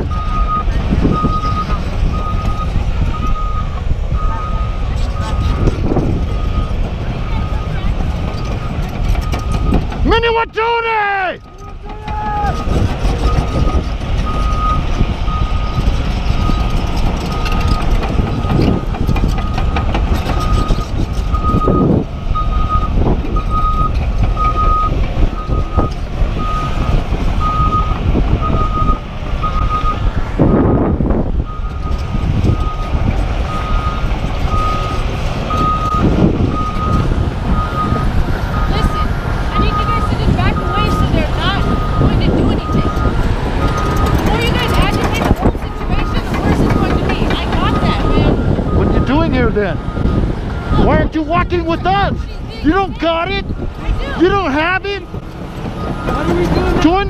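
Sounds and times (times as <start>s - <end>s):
low engine rumble: 0.0s - 57.0s
backup alarm beeping: 12.5s - 30.8s, 33.5s - 54.3s.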